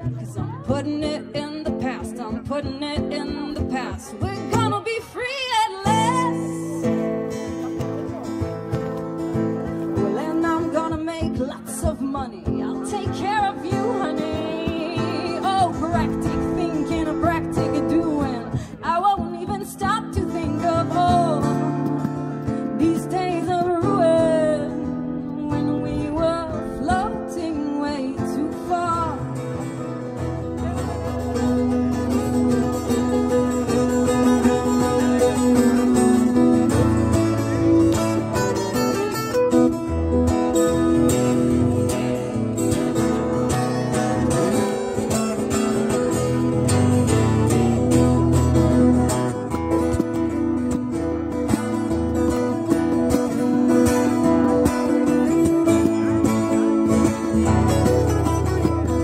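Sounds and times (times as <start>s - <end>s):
acoustic guitar music: 0.0s - 59.0s.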